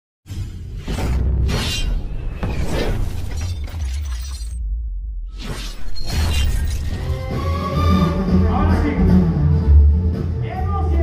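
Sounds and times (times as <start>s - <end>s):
shattering glass crash: 1.7s - 4.6s
heavy bass music: 7.2s - 11.0s.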